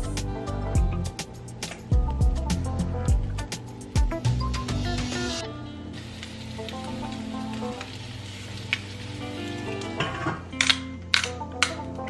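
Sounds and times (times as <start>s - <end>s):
background music: 0.0s - 12.0s
egg sizzling in a skillet: 5.9s - 10.1s.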